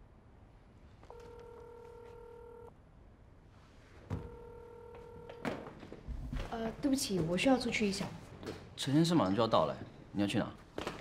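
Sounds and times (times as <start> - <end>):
phone ringback tone: 1.1 - 2.7, 4.2 - 5.6
office chair knocks and thunk: 4.1 - 4.4.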